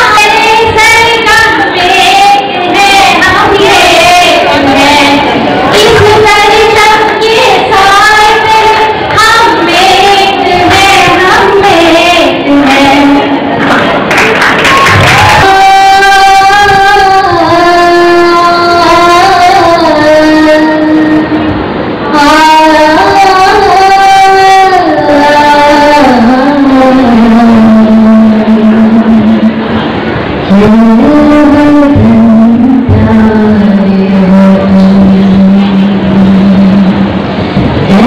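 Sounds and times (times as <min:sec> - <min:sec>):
woman singing a long note: 0:15.1 - 0:29.6, 0:30.5 - 0:37.1.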